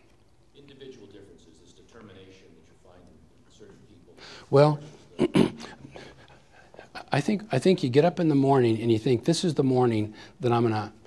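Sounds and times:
man clearing his throat: 5.1 - 6.1.

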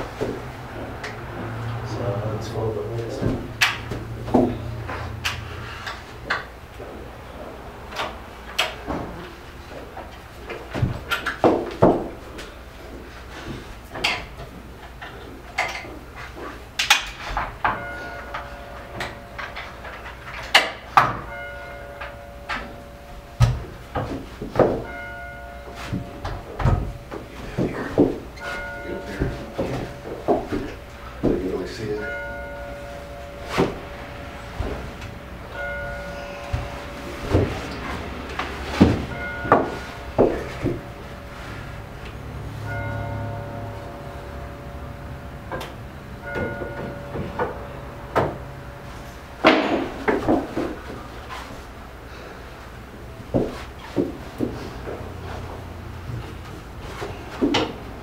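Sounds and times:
wooden knocks and clatter: 3.0 - 7.1, 7.9 - 41.3, 45.4 - 48.7, 49.4 - 51.7, 53.3 - 58.0
steady ringing tone: 17.3 - 53.2.

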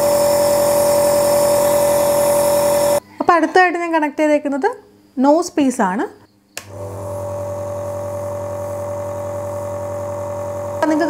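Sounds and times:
air compressor humming: 0.0 - 3.0, 6.6 - 11.0.

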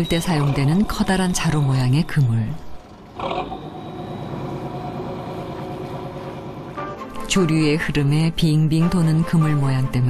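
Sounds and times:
boat engine droning: 0.0 - 9.6.

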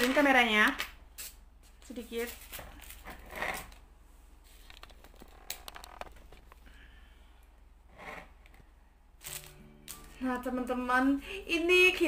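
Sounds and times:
thin plastic clicking and crinkling: 4.6 - 6.7
plastic rustle: 9.2 - 10.2.

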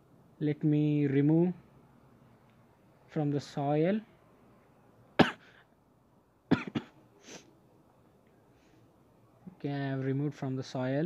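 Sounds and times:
man coughing: 5.2 - 5.6, 6.5 - 7.0.

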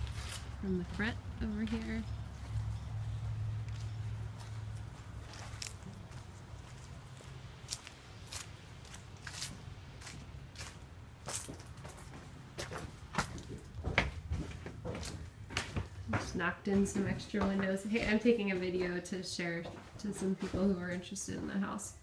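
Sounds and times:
low steady hum: 0.0 - 19.4
footsteps walking: 0.0 - 21.6.

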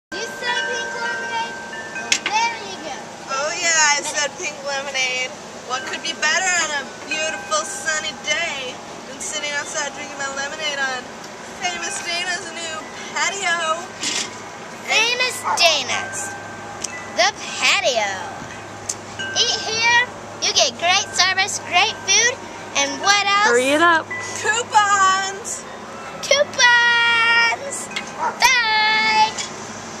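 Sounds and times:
voices talking: 0.1 - 29.5
metal wind chimes ringing: 0.1 - 29.7.

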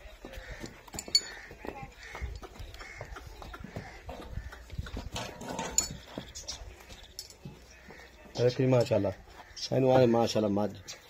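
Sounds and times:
hoof steps on dirt: 0.0 - 9.7.

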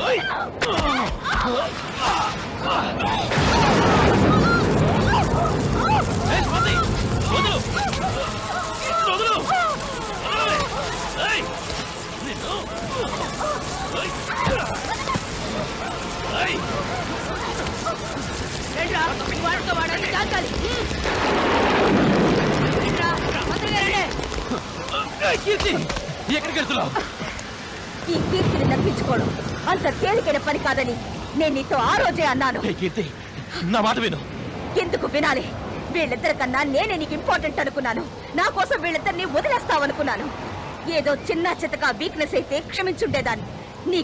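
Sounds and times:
spraying water rushing: 1.4 - 44.0
heavy rain hissing: 1.6 - 44.0
women screaming: 2.8 - 11.6.

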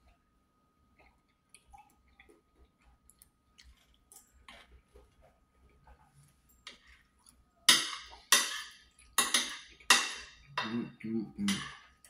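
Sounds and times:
person chewing food: 0.0 - 10.6.

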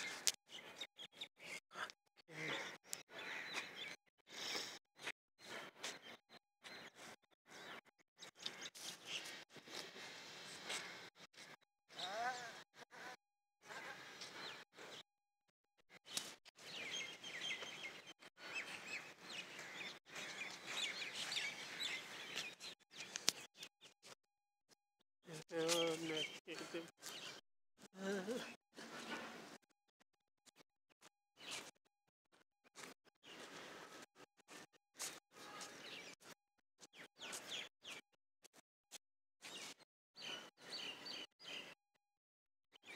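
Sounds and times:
small birds chirping: 0.0 - 15.0, 15.9 - 24.2, 25.3 - 29.6, 31.4 - 31.7, 32.8 - 38.1, 39.4 - 41.8.

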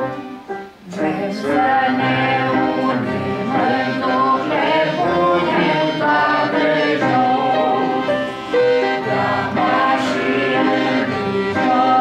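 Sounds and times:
woman and man singing a hymn: 0.0 - 12.0.

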